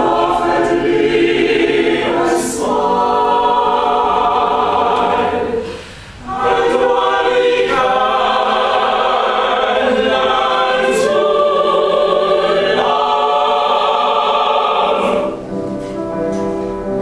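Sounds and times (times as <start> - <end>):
opera ensemble singing: 0.0 - 15.5.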